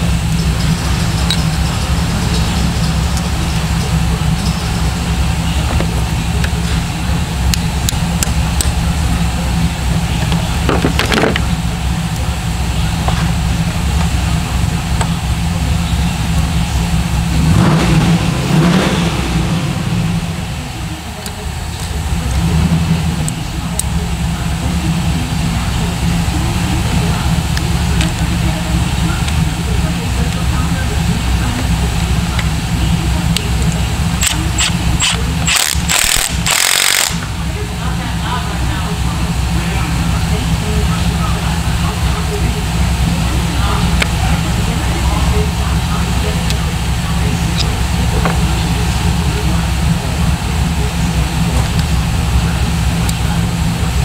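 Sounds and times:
low machinery drone: 0.0 - 54.0
sharp metal clicks: 33.3 - 37.3.

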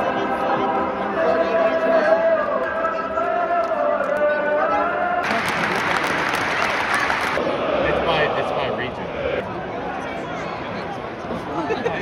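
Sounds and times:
applause and cheering: 5.2 - 7.4
crowd singing a chant: 7.2 - 10.0.

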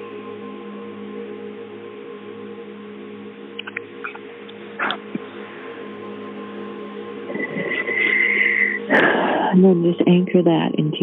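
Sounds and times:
ambient meditation music: 0.0 - 10.9.

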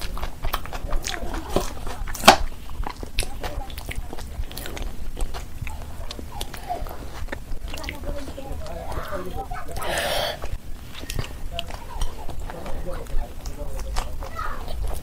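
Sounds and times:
wet chewing and mouth smacking: 0.0 - 15.0.

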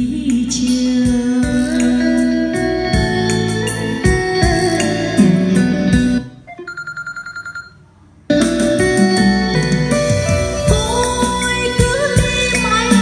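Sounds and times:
music through loudspeakers: 0.0 - 6.7, 8.3 - 13.0.

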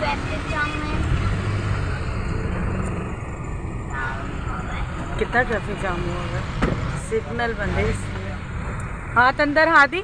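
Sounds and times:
van engine idling: 0.0 - 7.6.

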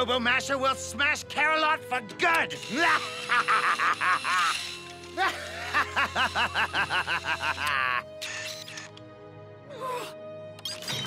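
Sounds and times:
cartoon background music: 0.0 - 11.0
high-pitched cackling laughter: 2.9 - 9.0.

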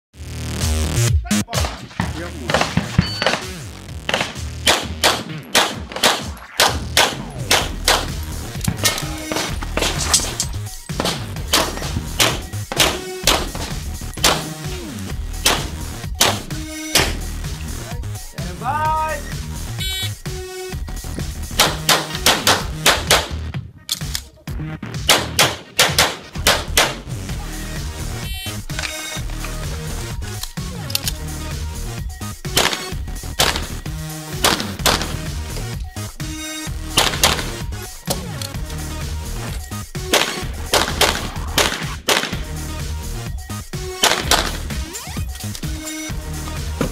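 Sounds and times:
background music: 0.2 - 46.9
pistol shots: 1.6 - 14.7, 15.4 - 17.2, 21.6 - 23.4, 25.1 - 27.0, 32.5 - 33.8, 34.4 - 35.3, 37.0 - 37.6, 40.0 - 42.6, 44.0 - 44.7.

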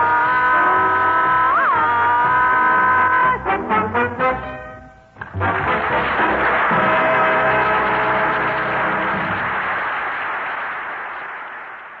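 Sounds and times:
studio audience applauding: 5.2 - 12.0.

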